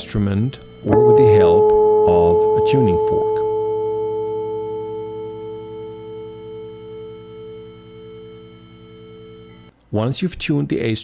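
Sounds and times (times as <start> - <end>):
electric guitar string ringing: 0.0 - 9.7
steady pure reference tone: 0.0 - 9.7.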